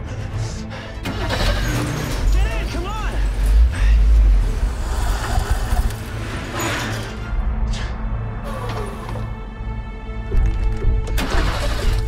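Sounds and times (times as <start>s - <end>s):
dramatic background music: 0.0s - 12.0s
van engine starting: 0.9s - 3.5s, 11.1s - 12.0s.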